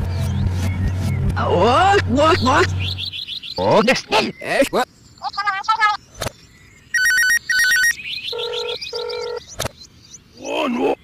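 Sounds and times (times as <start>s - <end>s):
electronic telephone ringing: 6.9s - 9.4s.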